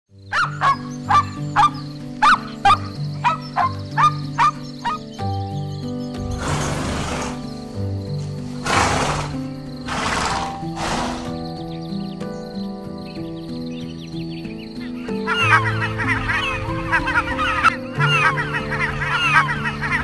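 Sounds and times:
background music with held notes: 0.1 - 20.0
horse snorting: 6.3 - 7.6, 8.2 - 11.5.

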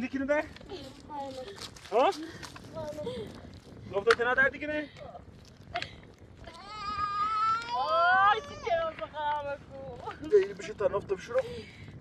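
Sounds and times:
child crying: 6.4 - 8.9.

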